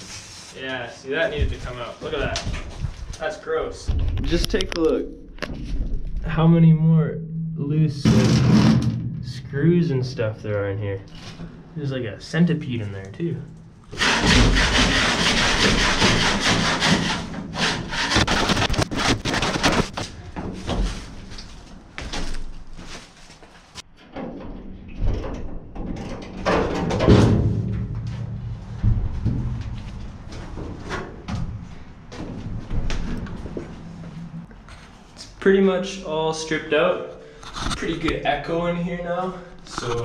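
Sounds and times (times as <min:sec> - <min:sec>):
scraping on metal floor: 0:13.9 - 0:23.6
wooden boards knocking and clattering: 0:17.9 - 0:21.2, 0:25.0 - 0:31.6.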